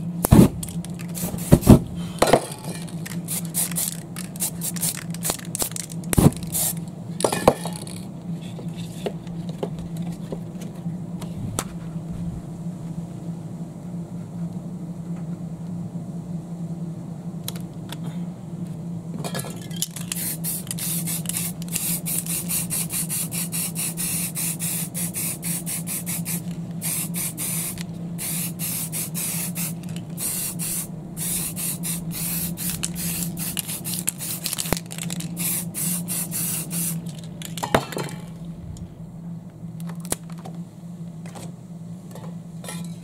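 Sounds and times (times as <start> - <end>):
spray paint can hissing: 1.0 - 1.8, 3.0 - 6.8, 20.0 - 37.2.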